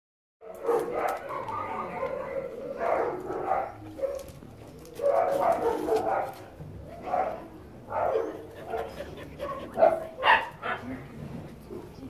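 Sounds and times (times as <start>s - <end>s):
dogs barking and yelping: 0.4s - 10.9s.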